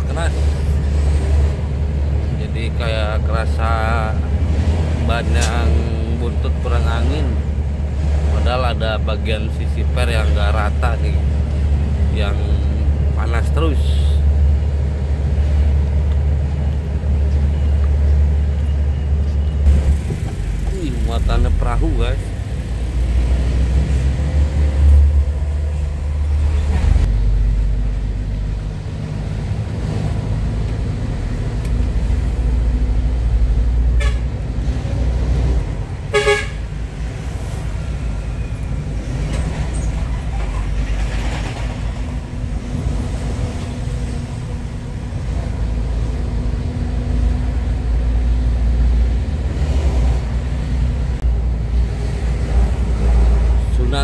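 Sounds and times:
truck diesel engine drone: 0.0 - 54.0
truck horn toot: 34.0 - 34.4, 36.1 - 36.7.

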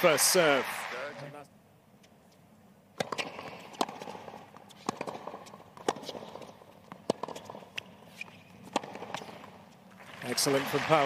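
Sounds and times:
tennis balls bouncing: 1.9 - 11.0
tennis balls struck by rackets: 2.2 - 11.0.

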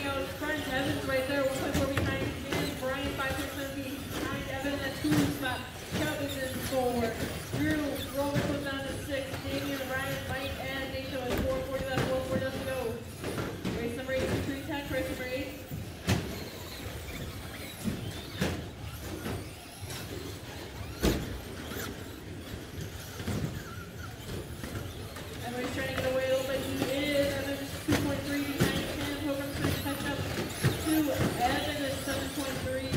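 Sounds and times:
tyres squealing: 0.0 - 32.9.

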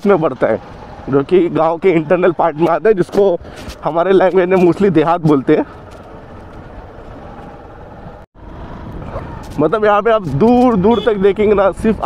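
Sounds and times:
road and wind noise: 0.0 - 12.0.

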